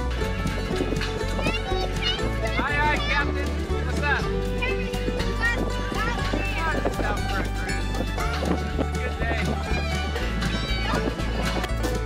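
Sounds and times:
music with clip-clop rhythm: 0.0s - 12.0s.

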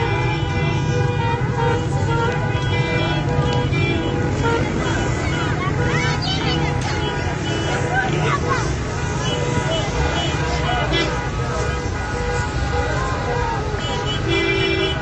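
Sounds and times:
car horns honking: 0.0s - 15.0s
car traffic: 0.0s - 15.0s
crowd shouting: 0.0s - 15.0s.

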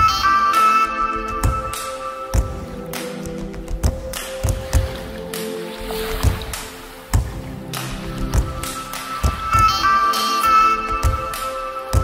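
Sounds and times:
held tones over drum beat: 1.1s - 12.0s.

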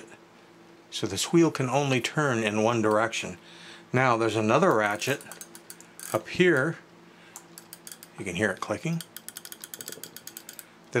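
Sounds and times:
ratchet clicking rapidly: 4.9s - 6.2s, 7.6s - 8.2s, 8.8s - 10.7s.

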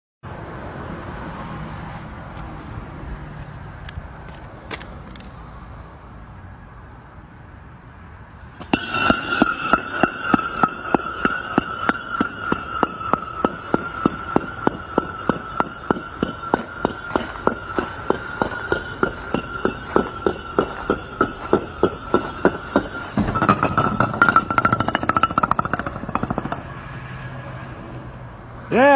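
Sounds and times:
outdoor background rumble: 0.3s - 28.8s
concrete blocks toppling and clacking: 8.4s - 26.8s.

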